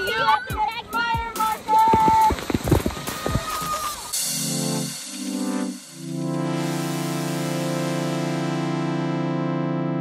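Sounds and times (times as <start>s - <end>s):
water splashing down: 1.4s - 4.2s.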